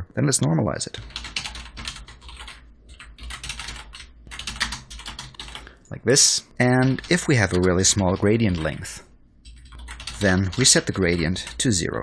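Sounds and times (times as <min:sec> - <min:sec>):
computer keyboard typing: 0:01.0 - 0:05.7, 0:06.6 - 0:11.9.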